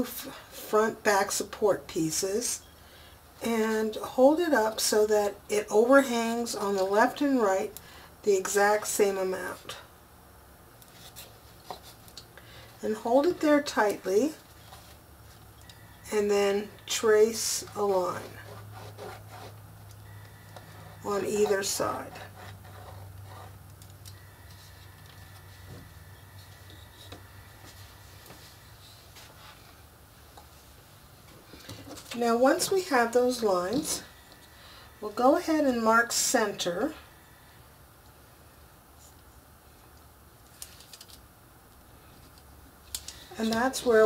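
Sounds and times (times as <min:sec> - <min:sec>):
steady low hum: 0:00.0 - 0:40.4
pen scratching on chipboard: 0:18.4 - 0:19.6.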